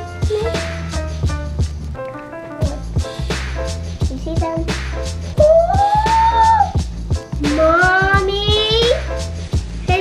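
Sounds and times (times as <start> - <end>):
background music with steady beat: 0.0 - 10.0
boy making rising ooh: 5.4 - 6.8.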